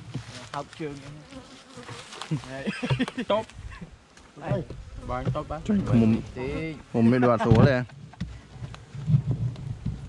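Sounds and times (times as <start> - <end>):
honeybees buzzing: 0.0 - 8.2
voices: 4.3 - 7.9.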